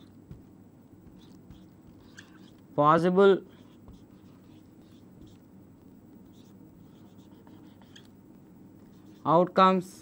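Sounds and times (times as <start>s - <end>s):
low room hum: 0.0s - 10.0s
marker scratching on whiteboard: 1.0s - 2.6s, 3.4s - 5.5s, 6.2s - 8.1s, 8.8s - 9.4s.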